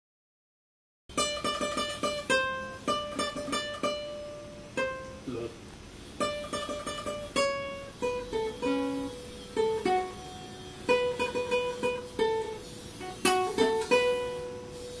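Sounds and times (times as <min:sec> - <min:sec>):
classical guitar fingerpicked: 0:01.1 - 0:15.0.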